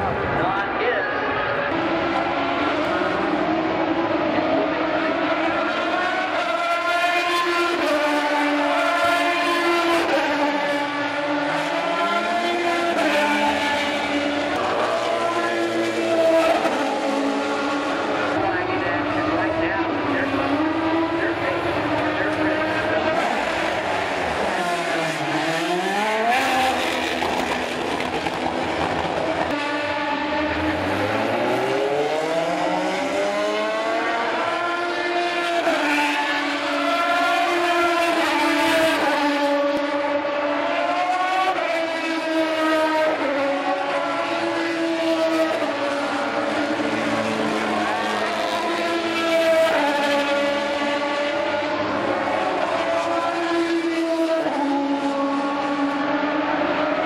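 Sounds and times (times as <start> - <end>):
car braking and downshifting: 0.0 - 57.0
race car engines at speed: 0.0 - 57.0.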